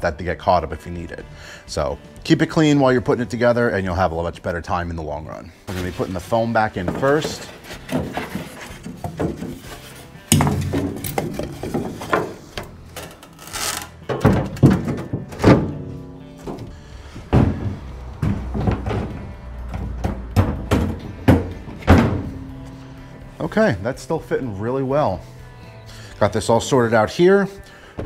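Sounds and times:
background music: 0.0s - 28.0s
boards knocking in metal boat hull: 14.1s - 16.7s, 17.3s - 22.5s.

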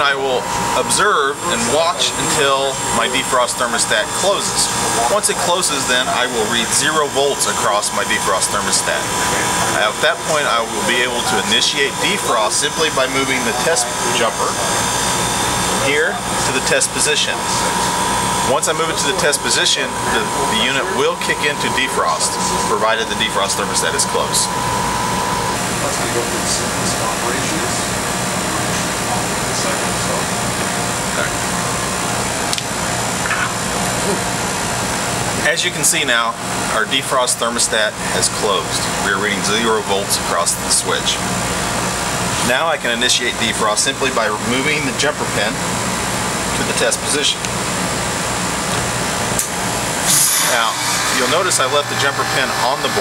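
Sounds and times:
steady high tone: 0.0s - 32.1s
heat pump mechanical hum and hiss: 0.0s - 53.0s.

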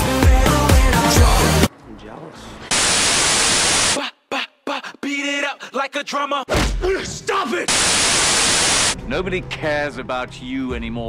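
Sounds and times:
burst of white noise: 2.7s - 4.0s, 7.7s - 9.0s.

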